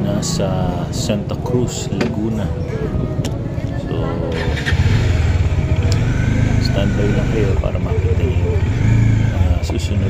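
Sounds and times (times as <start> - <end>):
motor scooter engine running: 4.3 - 10.0.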